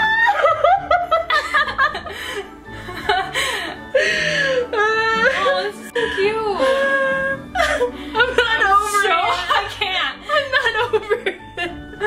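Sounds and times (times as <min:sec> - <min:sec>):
music playing: 0:00.0 - 0:12.0
women laughing: 0:00.0 - 0:12.0.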